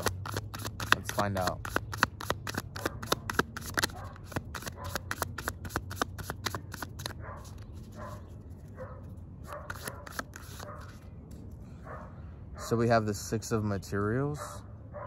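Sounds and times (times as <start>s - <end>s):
cards being shuffled: 0.0s - 8.7s, 9.6s - 11.4s.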